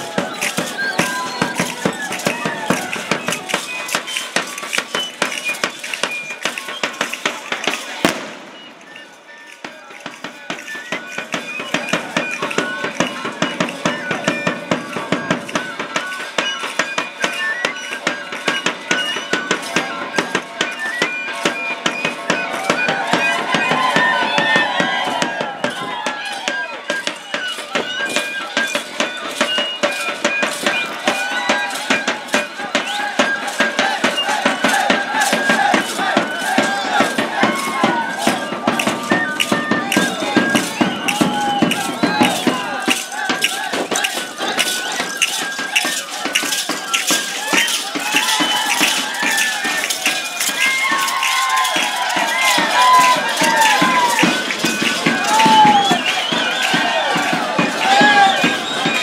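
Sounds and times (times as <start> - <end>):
crowd voices: 0.0 - 59.0
procession music: 0.0 - 59.0.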